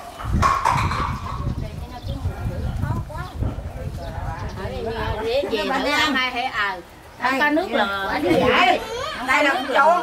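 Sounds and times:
people talking outdoors: 0.0 - 10.0.

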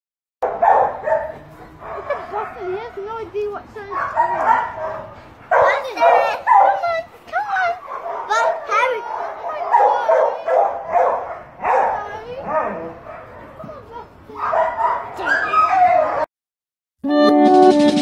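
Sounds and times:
dog yipping and whimpering: 14.4 - 16.2.

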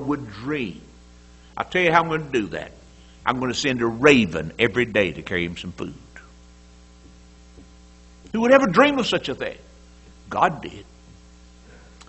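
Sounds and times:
electrical mains hum: 0.0 - 12.0
faint hiss: 0.0 - 12.0.

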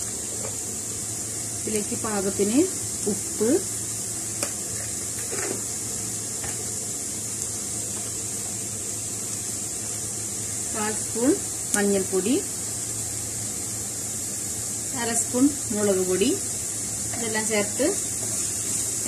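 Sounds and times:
food sizzling in a pan: 0.0 - 19.0.

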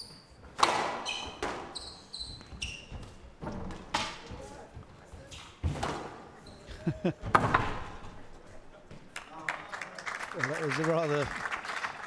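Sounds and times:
squash ball knocking off walls: 7.2 - 8.1
crowd applauding: 9.1 - 12.0.

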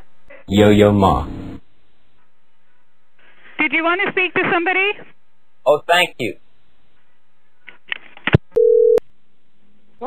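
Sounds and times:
telephone line beep: 8.6 - 9.0.

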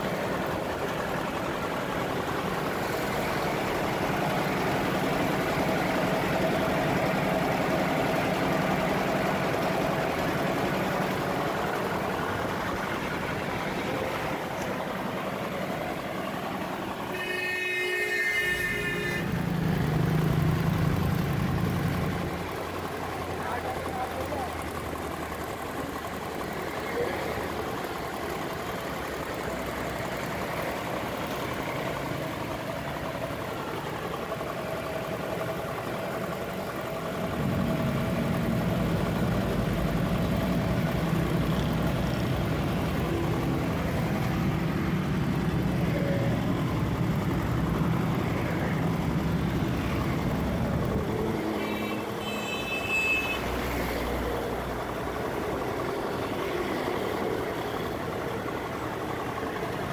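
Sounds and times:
street traffic: 0.0 - 59.9
truck engine rumbling: 0.0 - 59.9.

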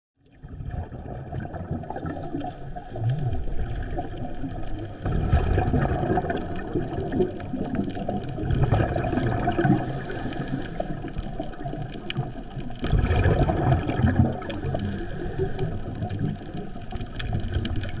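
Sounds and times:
underwater bubbling and gurgling: 0.2 - 18.0.

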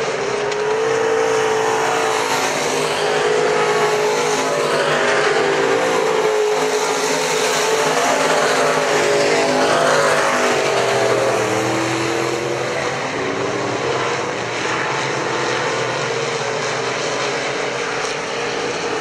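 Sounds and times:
race car engines: 0.0 - 19.0.

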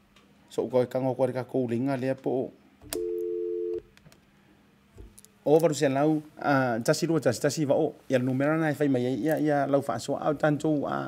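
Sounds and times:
telephone line click: 2.9 - 3.8
two-note telephone tone: 2.9 - 3.8.

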